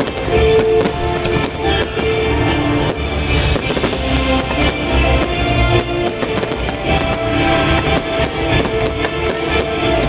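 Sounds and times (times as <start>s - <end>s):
fireworks bangs and crackles: 0.0s - 10.0s
loud show music: 0.0s - 10.0s.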